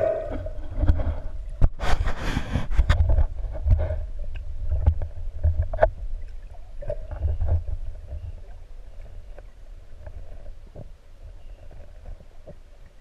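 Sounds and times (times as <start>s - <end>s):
muffled underwater rumble: 0.0s - 13.0s.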